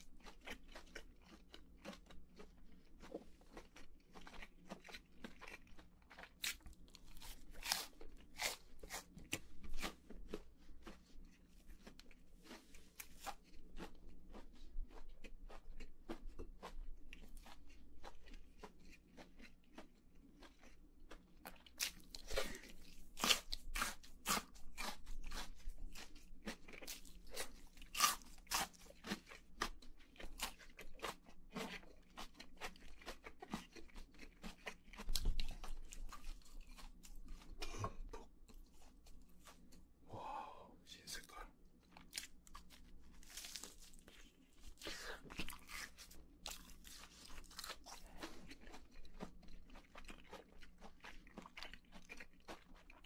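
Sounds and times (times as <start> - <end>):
chewing crispy chicken: 0.0 - 53.0.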